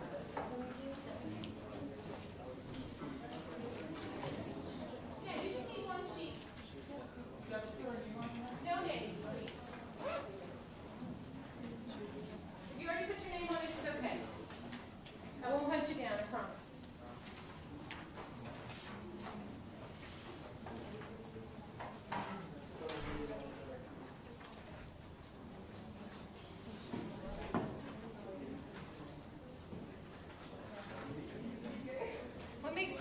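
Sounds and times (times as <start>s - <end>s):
classroom room noise: 0.0s - 33.0s
murmur of voices: 0.0s - 33.0s.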